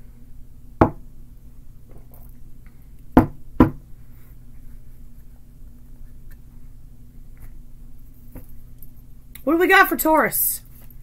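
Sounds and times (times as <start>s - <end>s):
knocks on a tabletop: 0.8s - 1.0s, 3.2s - 3.8s.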